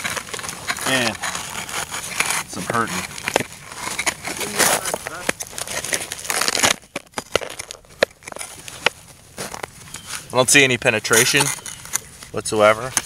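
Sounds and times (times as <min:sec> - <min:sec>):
handling noise: 0:00.0 - 0:13.0
icy snow crunching: 0:00.0 - 0:13.0.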